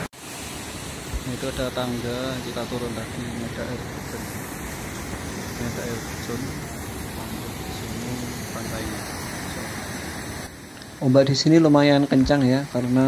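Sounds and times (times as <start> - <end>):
ocean surf breaking: 0.0 - 13.0
faint voices: 1.2 - 10.2.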